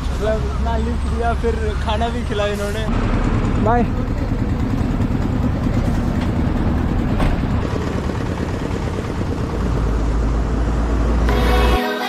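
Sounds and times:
road noise: 0:00.0 - 0:11.8
truck engine rumbling: 0:00.0 - 0:11.8.

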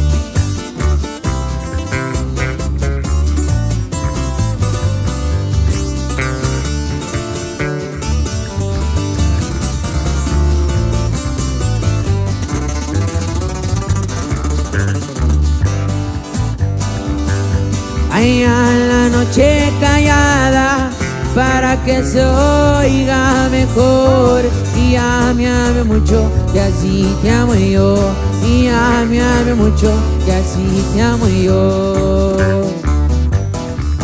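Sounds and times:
acoustic guitars and bass music: 0:00.0 - 0:34.0.

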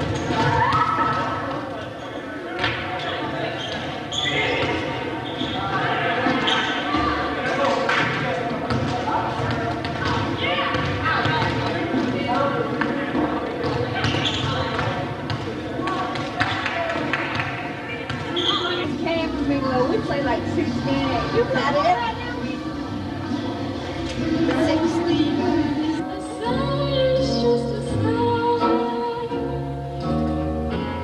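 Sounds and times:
many voices talking and calling: 0:00.0 - 0:29.5.

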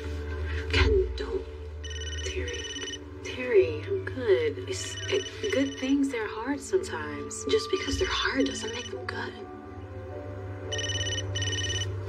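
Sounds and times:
background music: 0:00.0 - 0:12.0
telephone ringing: 0:01.8 - 0:03.0, 0:04.8 - 0:06.0, 0:07.8 - 0:09.0, 0:10.7 - 0:12.0.

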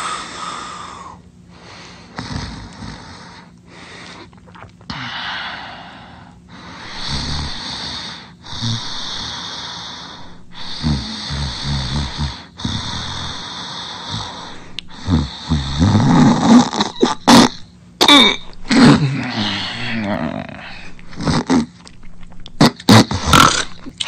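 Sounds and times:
cartoon snoring: 0:02.2 - 0:03.5, 0:06.8 - 0:21.7, 0:22.6 - 0:23.9.

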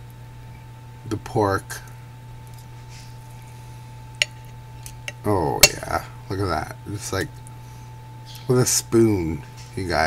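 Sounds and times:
steady low hum: 0:00.0 - 0:10.0
cutlery pulling apart meat: 0:04.2 - 0:05.9.

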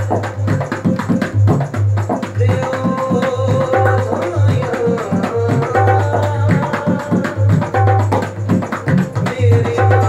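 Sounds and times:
hand drum playing quick rhythm: 0:00.0 - 0:10.0.

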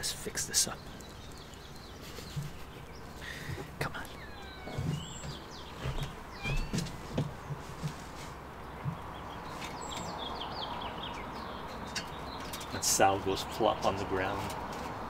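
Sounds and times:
small birds chirping and whistling: 0:00.0 - 0:14.4
soft handling knocks and rustles: 0:02.0 - 0:03.8, 0:04.5 - 0:10.2.

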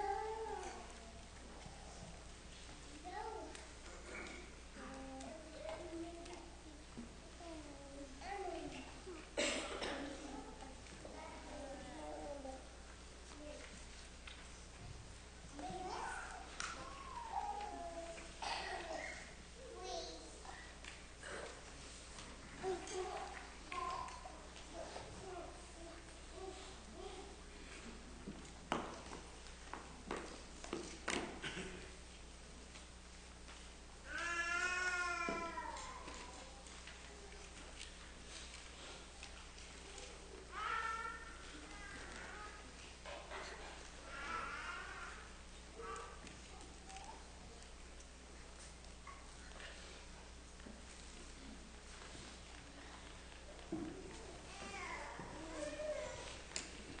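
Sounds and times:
person coughing: 0:09.4 - 0:10.1
small child babbling: 0:15.6 - 0:20.6, 0:34.1 - 0:36.6, 0:54.5 - 0:56.5
small child crying: 0:34.1 - 0:36.0.

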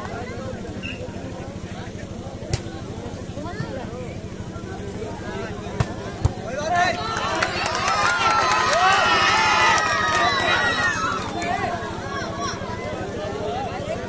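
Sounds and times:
many voices shouting: 0:06.5 - 0:14.0.

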